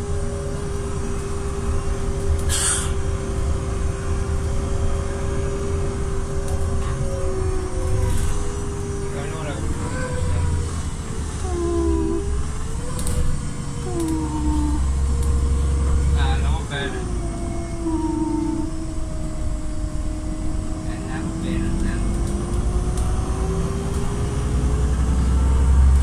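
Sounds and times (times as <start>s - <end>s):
bus engine and tyres rumbling: 0.0s - 26.0s
humming drivetrain tone: 0.0s - 26.0s.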